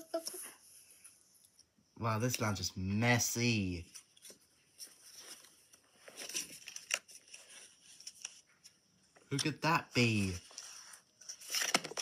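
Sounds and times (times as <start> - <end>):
cardboard packaging rustling: 4.1 - 8.7, 10.0 - 12.0.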